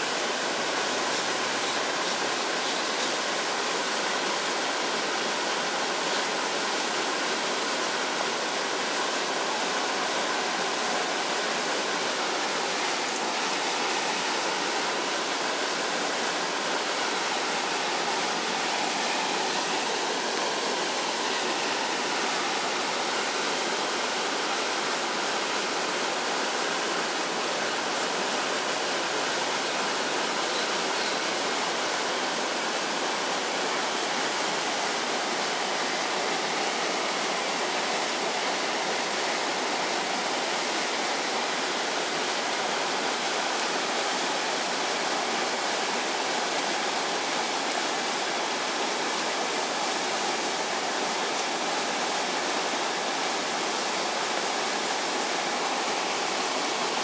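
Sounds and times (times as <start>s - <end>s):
water rushing under bridge: 0.0s - 57.0s.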